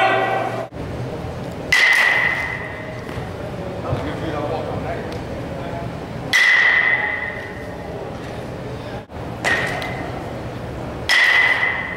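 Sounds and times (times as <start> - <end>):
metal bat striking ball: 1.7 - 2.8, 6.3 - 7.4, 9.4 - 10.1, 11.1 - 11.9.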